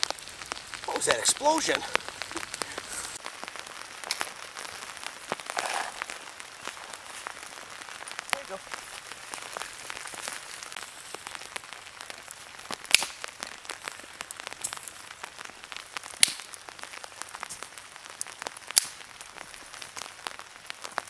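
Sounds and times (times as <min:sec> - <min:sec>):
campfire crackling: 0:00.0 - 0:21.0
light rain patter: 0:00.0 - 0:21.0
sharp loud fire pops: 0:12.8 - 0:13.3, 0:16.2 - 0:16.6.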